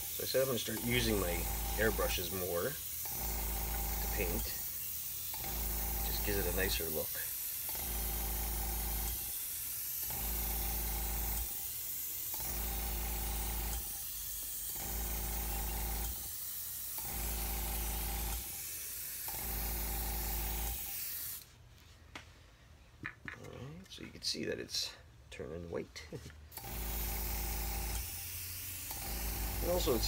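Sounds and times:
airbrush spraying hiss: 0:00.0 - 0:21.6, 0:27.9 - 0:30.0.

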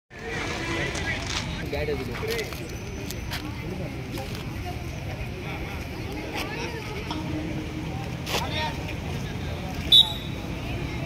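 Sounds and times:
voices on the court: 0:00.1 - 0:11.0
high-pitched whistle blast: 0:09.9 - 0:10.4.

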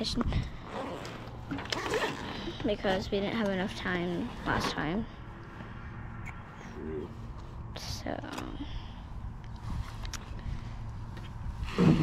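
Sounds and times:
wind rumbling on microphone: 0:00.0 - 0:00.7, 0:08.6 - 0:12.0.

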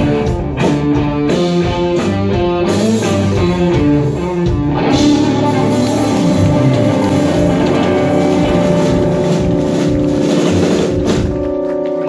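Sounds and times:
drum roll: 0:04.6 - 0:12.0
electric guitar chord: 0:04.8 - 0:12.0.

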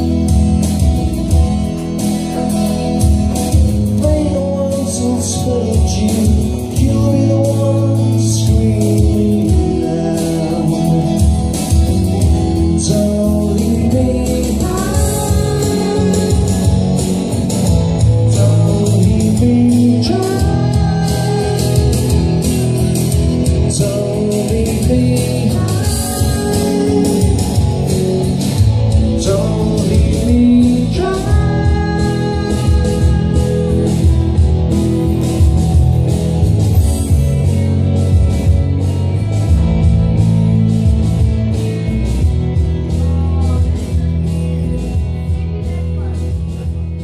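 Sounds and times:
electric guitar: 0:00.0 - 0:47.0
keyboard playing: 0:00.0 - 0:47.0
steady drum beat: 0:00.0 - 0:47.0
man singing: 0:02.3 - 0:34.5.

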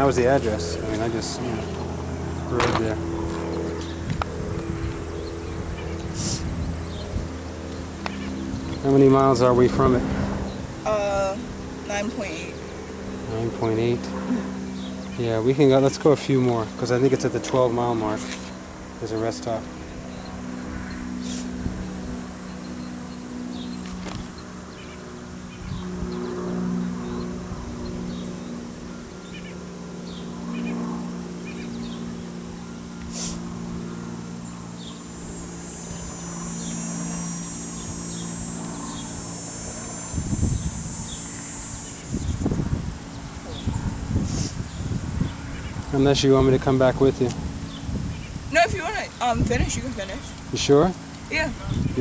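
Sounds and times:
wind rumbling on microphone: 0:00.0 - 0:19.0, 0:19.8 - 0:29.4, 0:33.4 - 0:52.0
steady low hum: 0:00.0 - 0:52.0
high insect buzz: 0:00.8 - 0:15.2, 0:19.7 - 0:46.0.

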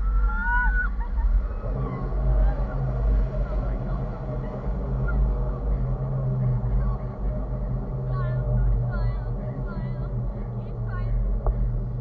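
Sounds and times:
girl squealing: 0:00.0 - 0:01.0
boat motor: 0:00.0 - 0:12.0
wind on microphone: 0:00.0 - 0:12.0.

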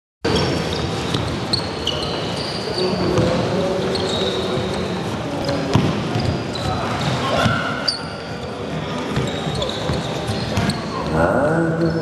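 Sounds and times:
gym hall noise: 0:00.2 - 0:12.0
high shoe squeaks: 0:00.3 - 0:11.1
basketballs bouncing on court: 0:03.0 - 0:04.8, 0:05.4 - 0:07.7, 0:09.0 - 0:10.8.

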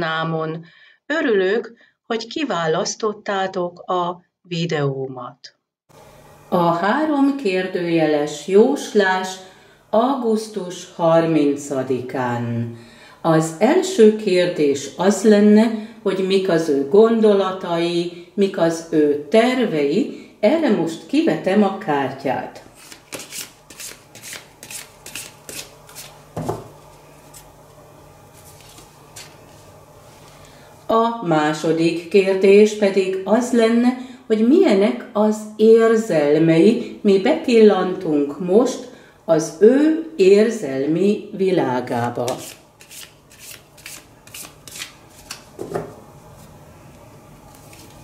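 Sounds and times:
cards being shuffled: 0:22.8 - 0:27.5, 0:28.4 - 0:29.7, 0:42.3 - 0:45.8, 0:47.5 - 0:48.0.

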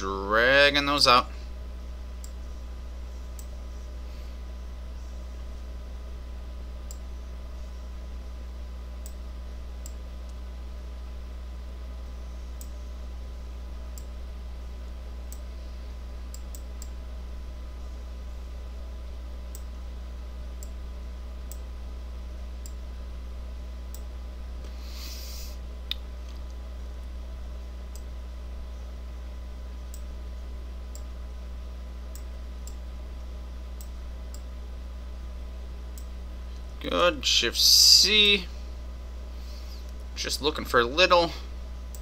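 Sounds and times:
low electrical hum: 0:00.0 - 0:42.0
computer mouse clicks: 0:16.3 - 0:17.0.

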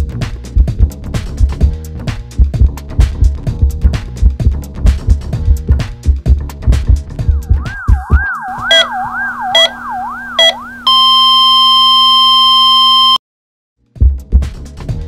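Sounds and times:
dance music with heavy beat: 0:05.0 - 0:10.6
low hum: 0:07.5 - 0:12.8
wailing emergency siren: 0:07.6 - 0:13.2
steady flatline tone: 0:07.7 - 0:13.2
heart monitor beeps: 0:07.9 - 0:13.2.

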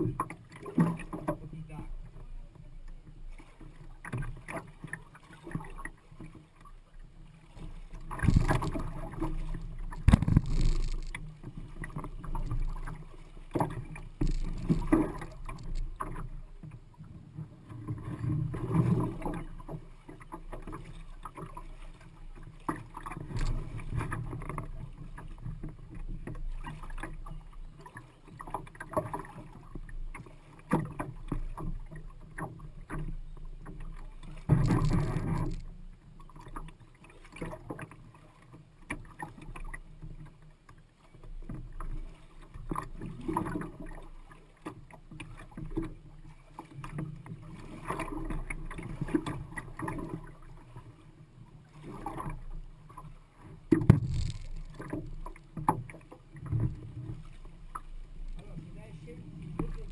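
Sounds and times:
water splashing against canoe hull: 0:00.0 - 0:59.9.

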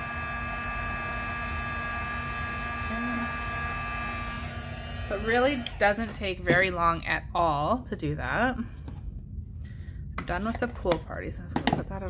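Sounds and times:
heat tool fan whining hum: 0:00.0 - 0:12.0.

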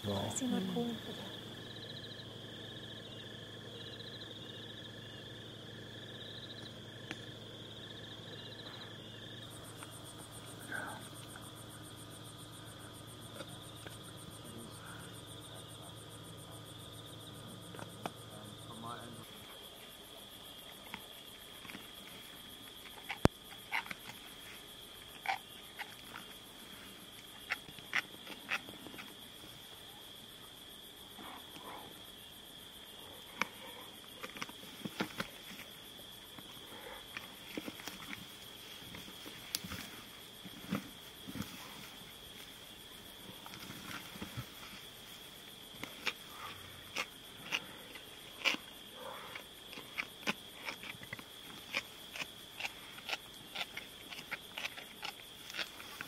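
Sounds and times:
crickets trilling: 0:00.0 - 0:56.0
hyena chewing crunches: 0:19.3 - 0:30.0, 0:33.0 - 0:56.0.

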